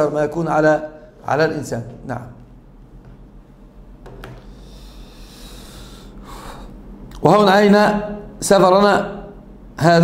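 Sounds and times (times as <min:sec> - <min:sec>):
man breathing through nose: 0:04.4 - 0:06.8.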